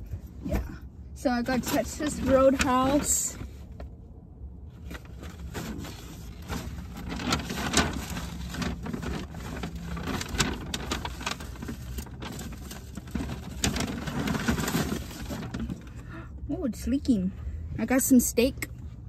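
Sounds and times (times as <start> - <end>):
low hum inside car: 0.0 - 19.0
plastic containers crackling: 1.2 - 3.5, 5.0 - 15.9
paper bag rustling: 1.4 - 3.6, 4.7 - 16.0.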